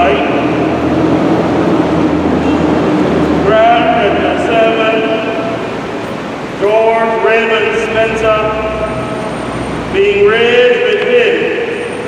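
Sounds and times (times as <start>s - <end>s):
man intoning a prayer: 3.4s - 5.4s, 6.6s - 8.9s, 9.9s - 11.8s.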